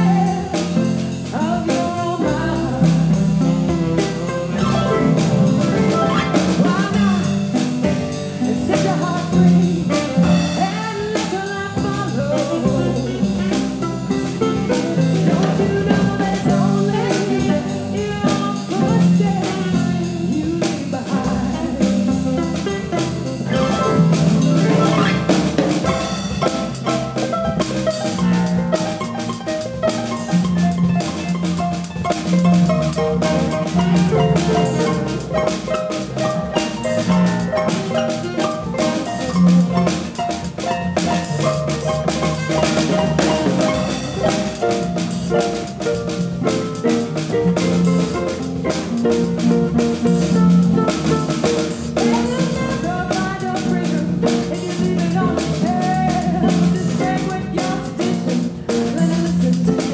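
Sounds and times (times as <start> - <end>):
concert harp: 0.0 - 59.9
drum kit and cymbals: 0.0 - 59.9
electric bass guitar: 0.0 - 59.9
saxophone melody: 22.9 - 46.6.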